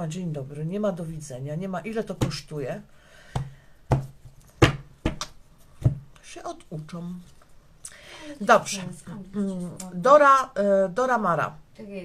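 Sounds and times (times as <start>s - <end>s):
knocks on tabletop: 3.3s - 6.1s.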